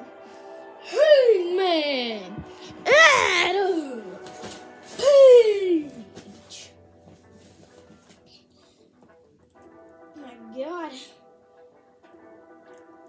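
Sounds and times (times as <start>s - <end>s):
faint background music: 0.0s - 13.0s
child crying out: 2.8s - 4.1s, 5.0s - 6.0s.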